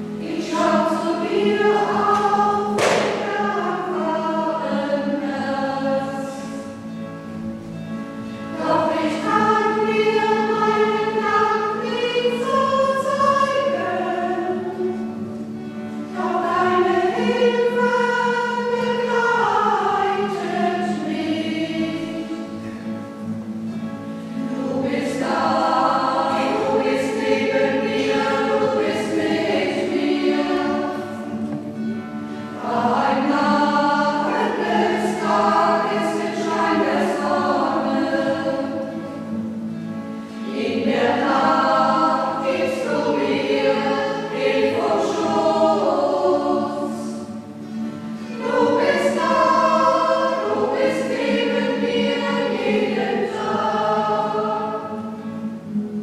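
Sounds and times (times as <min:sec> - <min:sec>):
group singing a hymn: 0:00.0 - 0:07.0, 0:08.2 - 0:56.0.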